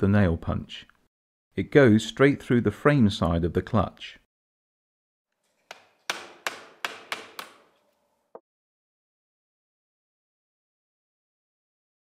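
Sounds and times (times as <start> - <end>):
hammer striking metal punch: 5.7 - 7.7.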